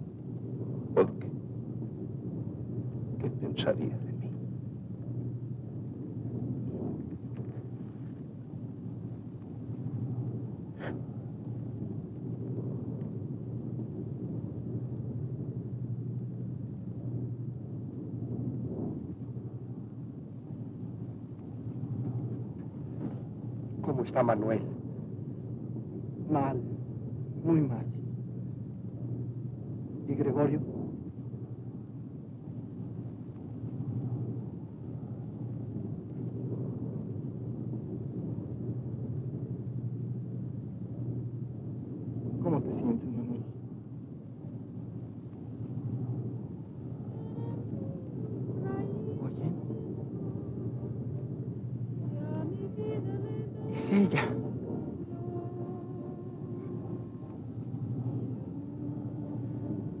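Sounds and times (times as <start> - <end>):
aircraft engine drone in cabin: 0.0 - 60.0.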